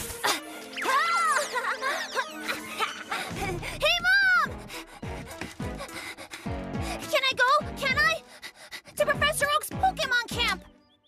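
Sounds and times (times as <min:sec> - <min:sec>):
playful background music: 0:00.0 - 0:11.0.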